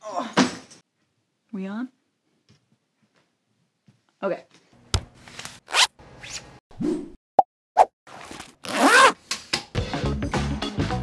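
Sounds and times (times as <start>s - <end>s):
zipper pulls: 5.7s - 6.4s, 8.1s - 9.2s.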